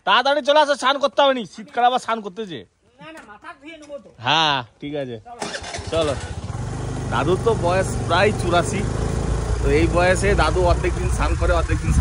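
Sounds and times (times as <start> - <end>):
man talking: 0.0 - 6.4, 7.1 - 9.0, 9.6 - 12.0
motorcycle engine running: 5.6 - 12.0.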